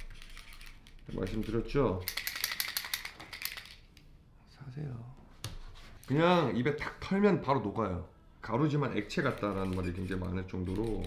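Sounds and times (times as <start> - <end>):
calendar pages flipping: 9.0 - 11.0.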